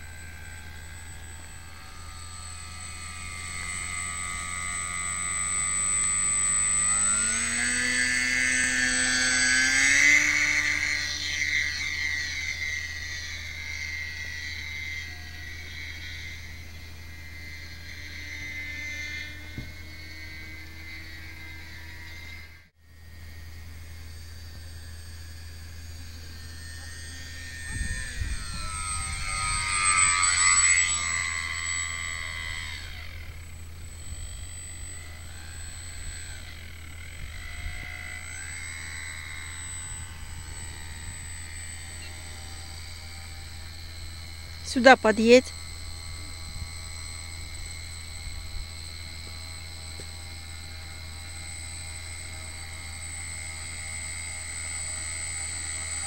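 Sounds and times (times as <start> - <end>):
model plane motor whine: 0.0 - 56.0.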